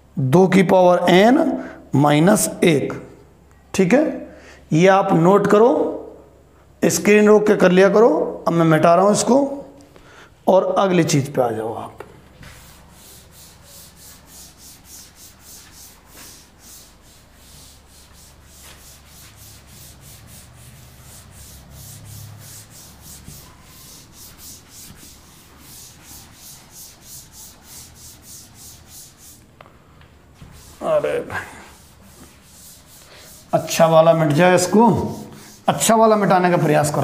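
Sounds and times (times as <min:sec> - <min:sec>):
duster rubbing chalkboard: 0:12.4 - 0:29.5, 0:30.3 - 0:37.0.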